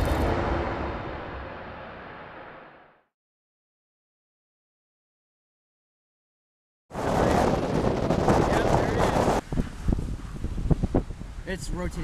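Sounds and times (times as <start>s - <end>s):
wind buffeting microphone: 6.9s - 12.0s.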